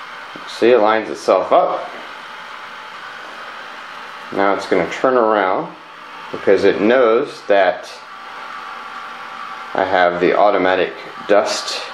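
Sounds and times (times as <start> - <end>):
robot vacuum running: 0.0 - 11.9.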